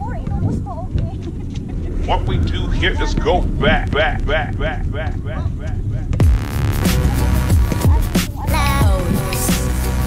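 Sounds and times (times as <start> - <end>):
steady low rumble: 0.0 - 10.0
distant players calling out: 1.9 - 6.2.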